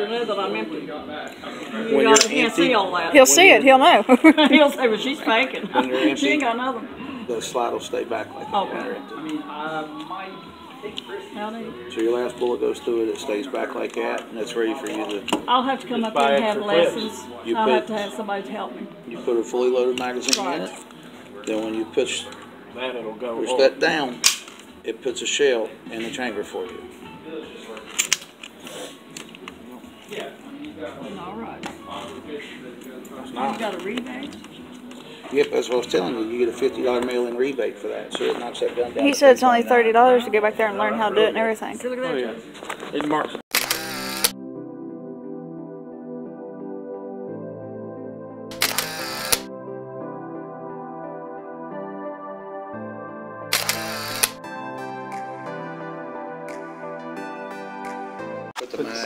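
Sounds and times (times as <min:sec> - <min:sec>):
pistol slide metallic clacks: 0:24.2 - 0:24.6
faint gun handling clicks: 0:24.2 - 0:24.7, 0:27.8 - 0:28.6
camera shutter: 0:43.5 - 0:44.4, 0:48.5 - 0:49.5, 0:53.5 - 0:54.4
music of sustained chords: 0:43.7 - 0:58.6.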